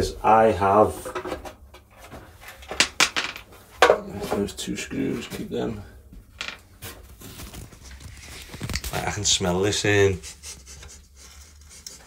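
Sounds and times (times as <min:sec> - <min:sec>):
hands rubbing plastic cover: 0:07.2 - 0:12.0.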